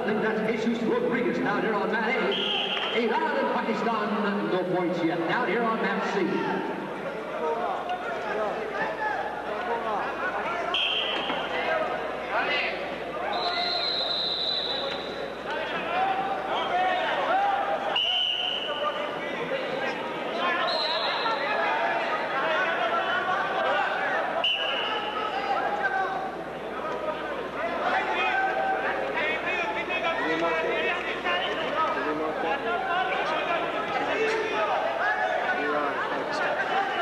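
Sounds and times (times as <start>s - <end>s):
many voices chattering: 0.0s - 37.0s
high whistle blasts: 2.3s - 3.0s, 10.7s - 11.3s, 13.3s - 15.1s, 17.9s - 18.8s, 20.6s - 21.4s, 24.4s - 25.1s.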